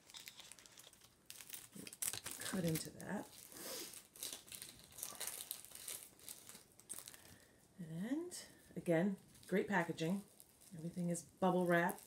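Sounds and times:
plastic packaging crinkling: 0:00.0 - 0:07.6, 0:08.5 - 0:12.0.

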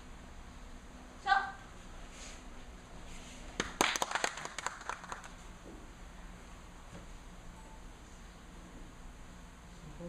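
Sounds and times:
hands clapping: 0:03.6 - 0:05.4.

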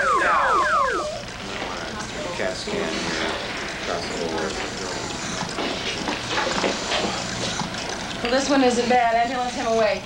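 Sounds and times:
emergency vehicle siren: 0:00.0 - 0:01.3.

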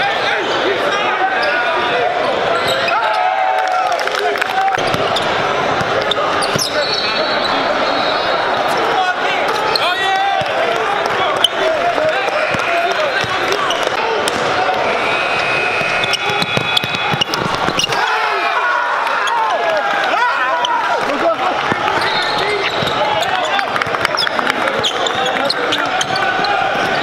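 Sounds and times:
crowd chattering: 0:00.0 - 0:27.0
sneakers squeaking on court: 0:04.8 - 0:07.7, 0:15.5 - 0:18.0, 0:21.7 - 0:27.0.

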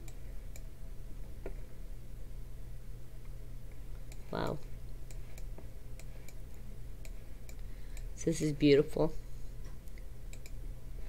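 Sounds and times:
low electrical hum: 0:00.0 - 0:11.0
computer mouse clicks: 0:09.9 - 0:10.6.

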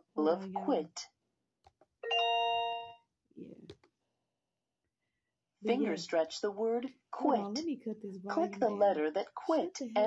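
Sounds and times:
bell-like chime: 0:02.0 - 0:03.0.

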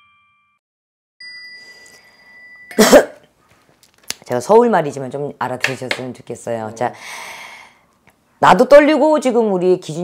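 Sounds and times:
high chime ringing: 0:01.2 - 0:02.8
woman coughing: 0:02.7 - 0:03.2.

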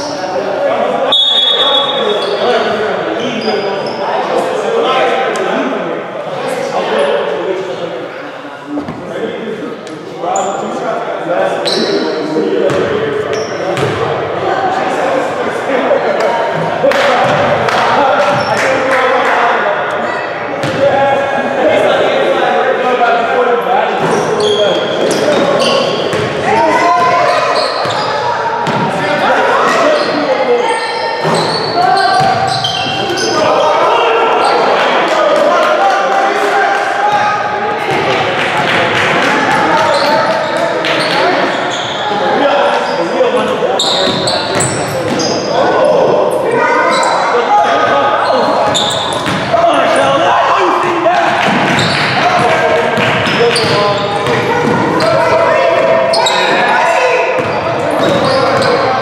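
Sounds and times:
players calling out: 0:11.5 - 0:59.0.

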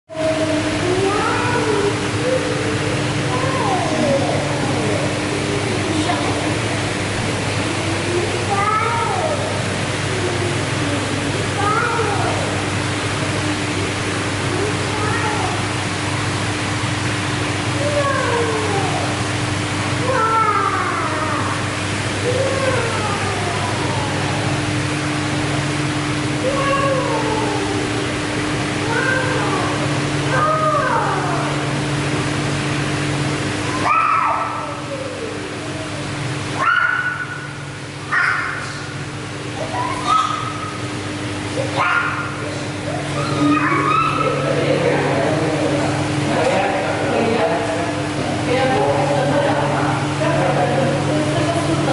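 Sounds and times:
steady hum and hiss: 0:00.1 - 0:51.9.

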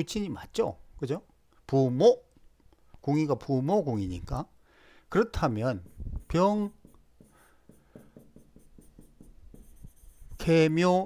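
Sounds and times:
stylus tapping on pen tablet: 0:05.8 - 0:10.3.

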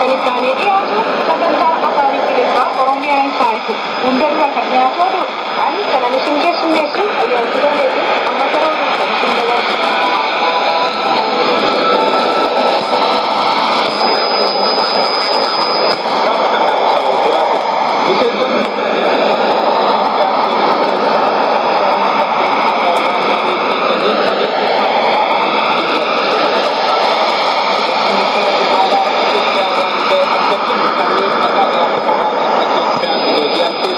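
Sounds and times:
shortwave radio broadcast: 0:00.0 - 0:33.9
thin high whistle: 0:10.0 - 0:16.7.

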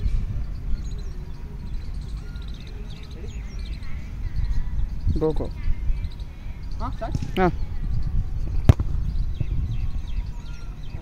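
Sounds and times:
steady low rumble: 0:00.0 - 0:11.0
foot kicking football thud: 0:08.7 - 0:09.0.

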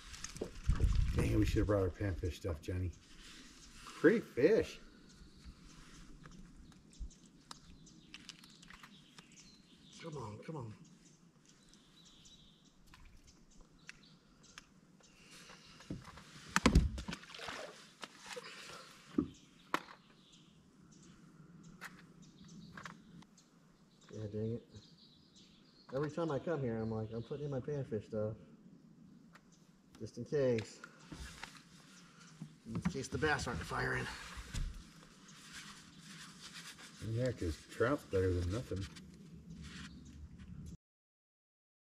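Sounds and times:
water splashing beside a boat: 0:16.5 - 0:19.0.

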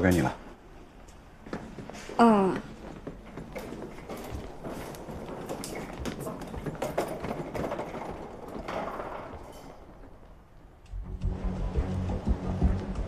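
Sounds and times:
footsteps on hard floor: 0:01.1 - 0:07.5
wheeled suitcase rattling: 0:01.6 - 0:10.8.

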